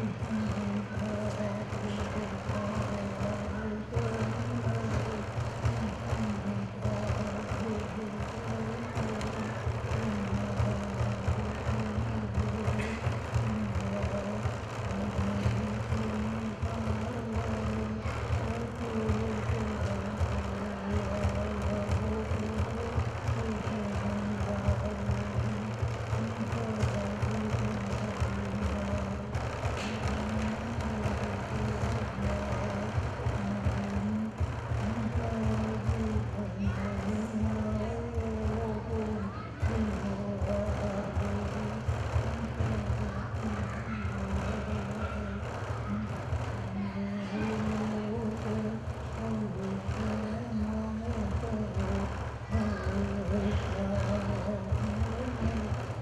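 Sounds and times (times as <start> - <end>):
frame drum beaten with stick: 0.0 - 56.0
man singing low chant: 0.0 - 56.0.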